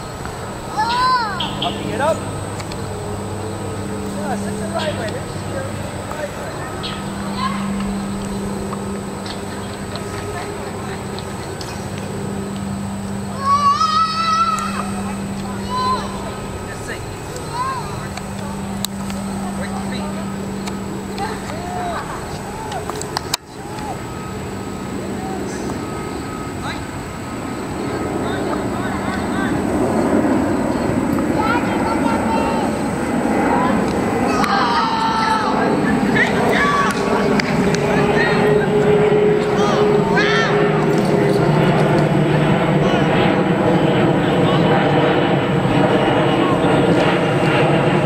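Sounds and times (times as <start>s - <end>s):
jet engine noise: 0.0s - 48.0s
low hum: 0.0s - 48.0s
murmur of voices: 0.0s - 48.0s.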